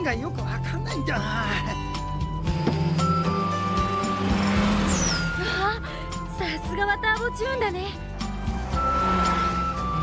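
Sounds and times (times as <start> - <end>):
background music: 0.0 - 10.0
car engine accelerating hard: 2.0 - 6.3, 8.2 - 10.0.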